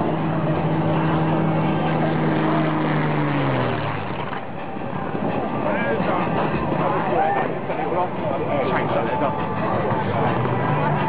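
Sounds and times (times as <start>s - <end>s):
aircraft engine droning: 0.0s - 11.0s
crowd chatter: 0.0s - 11.0s.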